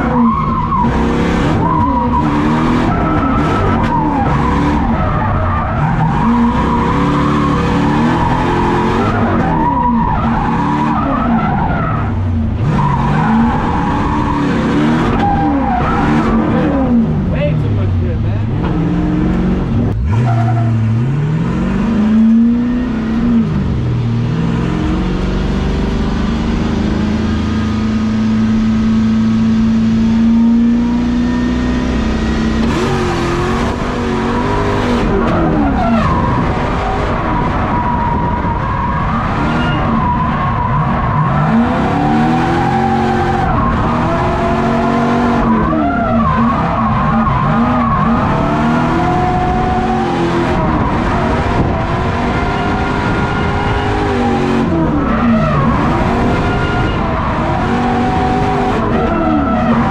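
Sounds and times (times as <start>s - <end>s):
tire squeal: 0.0s - 17.0s, 20.0s - 21.1s, 30.4s - 59.9s
car engine revving: 0.0s - 59.9s.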